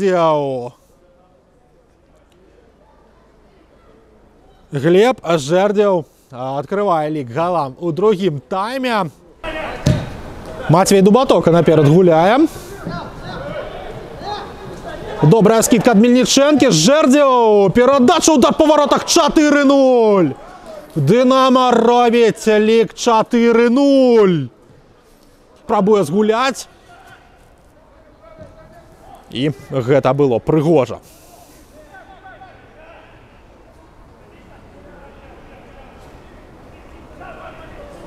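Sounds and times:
football pitch ambience: 0.0 - 38.0
low background noise: 0.0 - 38.0
distant shouts: 9.4 - 10.8, 12.3 - 24.4, 26.0 - 30.0, 31.1 - 38.0
faint voices calling out: 31.0 - 38.0.

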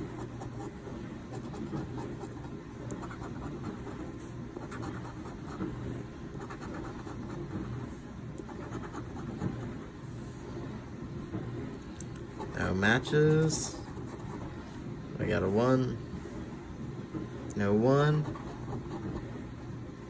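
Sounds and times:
coin scratching lottery ticket: 0.0 - 4.0, 4.6 - 5.6, 6.4 - 7.6, 8.5 - 9.8, 13.6 - 14.6, 18.2 - 19.2
steady low hum: 0.0 - 20.0.

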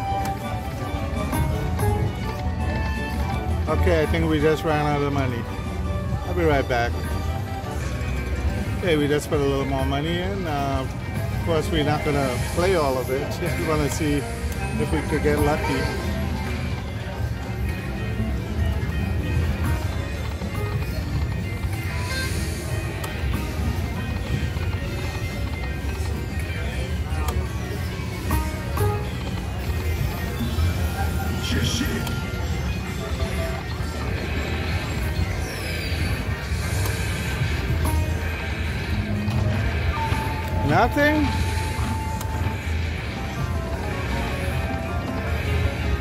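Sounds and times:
background music: 0.0 - 46.0
chatter: 0.0 - 46.0
slot machine spin sounds: 6.4 - 17.7, 20.8 - 46.0.

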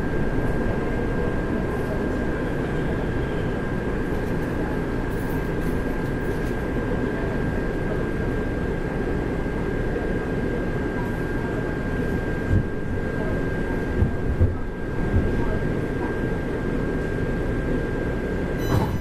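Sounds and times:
train rumbling: 12.1 - 15.8, 18.6 - 19.0.

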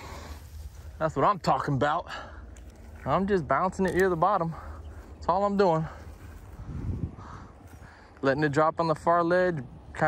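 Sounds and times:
wind rumbling on microphone: 2.6 - 10.0.

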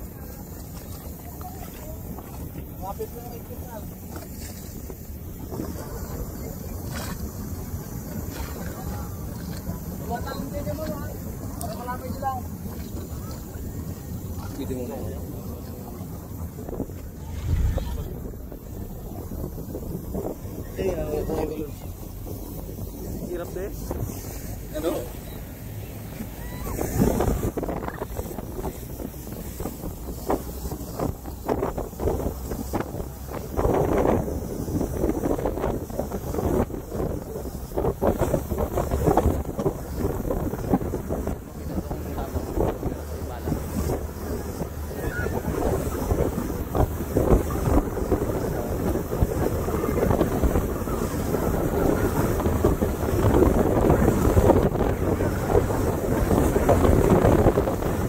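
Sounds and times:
rushing wake water: 0.0 - 58.0
wind buffeting microphone: 0.0 - 58.0.

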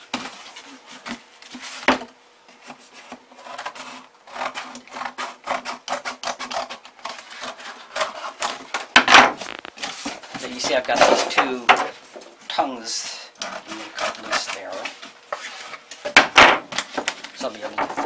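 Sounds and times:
scissors cutting cardboard: 2.6 - 11.0, 13.4 - 17.8.

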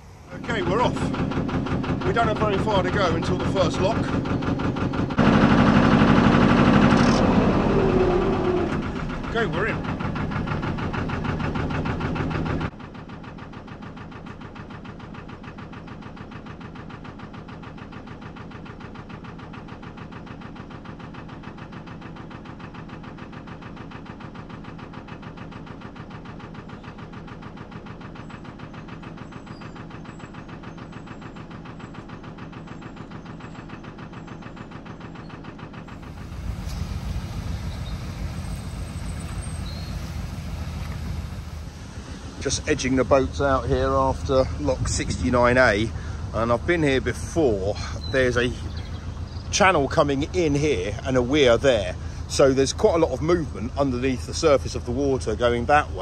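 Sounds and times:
diesel engine idling: 0.0 - 56.0.

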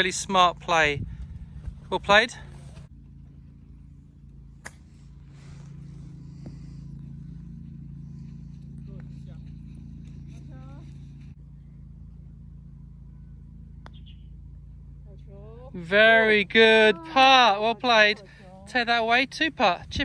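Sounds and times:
steady low hum: 0.0 - 20.0
golf club striking ball: 13.7 - 14.9.

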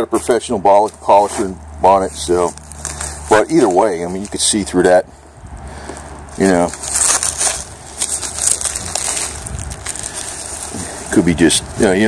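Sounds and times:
bubble wrap crinkling: 0.7 - 4.8, 5.9 - 12.0.

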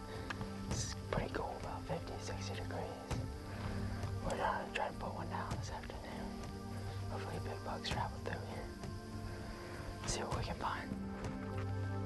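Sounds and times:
soft background music: 0.0 - 12.0
person whispering: 0.7 - 3.2, 4.2 - 8.8, 10.0 - 11.0.

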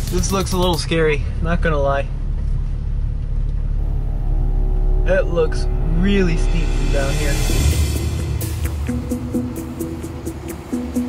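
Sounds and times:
low engine rumble in cabin: 0.0 - 11.0
sustained music notes: 3.6 - 11.0.

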